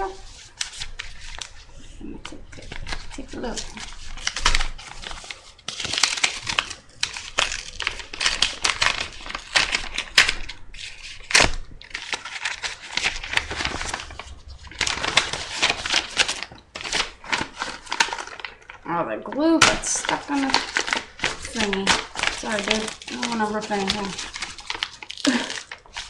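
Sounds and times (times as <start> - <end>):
paper envelope rustling and crackling: 0.0 - 26.0.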